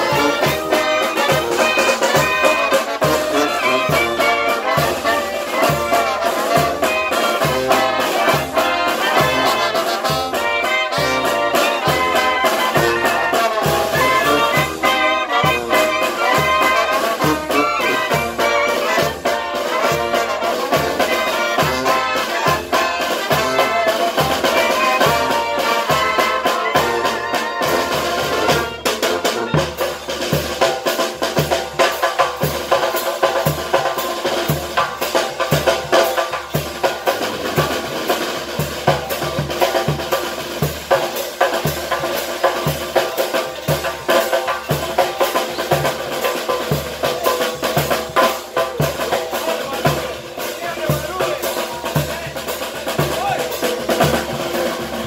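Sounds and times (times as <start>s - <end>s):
brass band playing: 0.0s - 55.0s.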